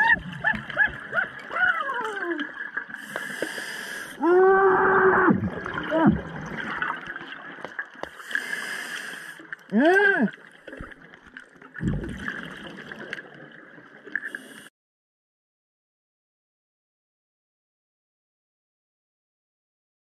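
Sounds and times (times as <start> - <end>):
bubbling: 0.0 - 14.3
diver inhaling through regulator: 3.0 - 4.2, 8.1 - 9.4
moaning exhalation: 9.7 - 10.4.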